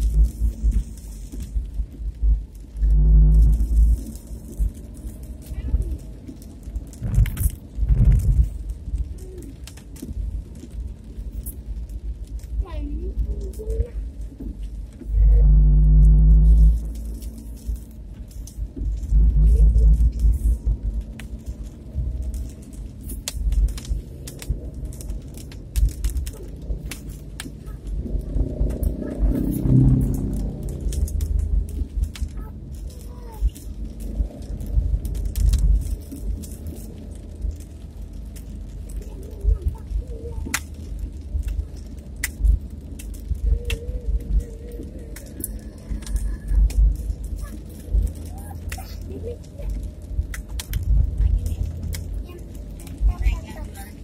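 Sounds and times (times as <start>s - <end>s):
road and engine rumble: 0.0s - 54.0s
wind buffeting microphone: 0.0s - 54.0s
loud pitched tone: 15.3s - 16.7s.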